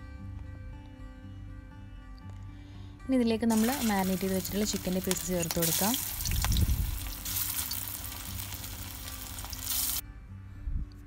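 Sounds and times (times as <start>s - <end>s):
chicken deep-frying in oil: 3.5s - 10.0s.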